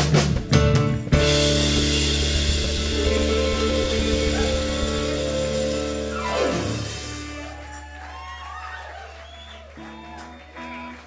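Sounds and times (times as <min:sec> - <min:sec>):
drum hit: 0:00.0 - 0:07.4
electric guitar and bass chord: 0:00.0 - 0:07.5.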